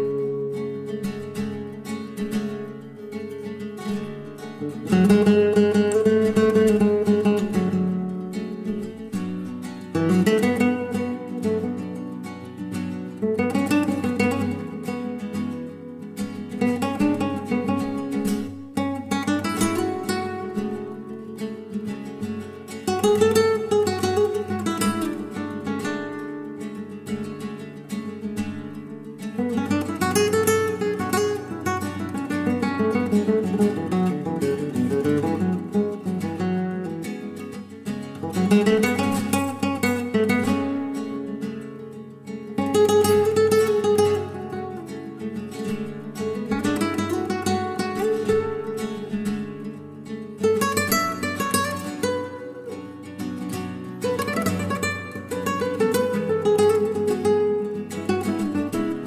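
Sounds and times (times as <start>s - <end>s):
acoustic guitar music: 0.0s - 59.0s.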